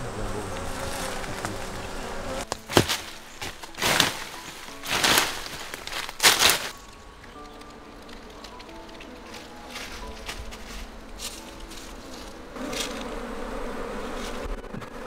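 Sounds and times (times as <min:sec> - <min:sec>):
honeybees buzzing: 0:00.0 - 0:15.0.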